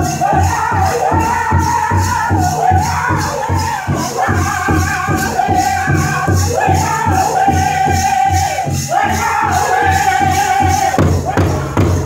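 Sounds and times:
large drum steady beat: 0.0s - 12.0s
men singing in unison: 0.0s - 12.0s.

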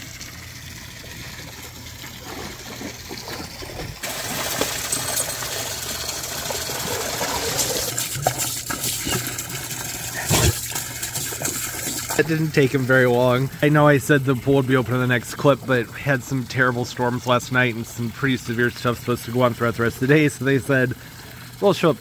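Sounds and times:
water splashing and sloshing: 0.0s - 22.0s.

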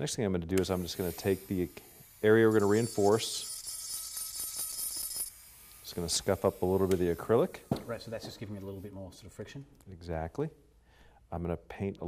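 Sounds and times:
dental handpiece grinding acrylic: 1.0s - 7.0s.

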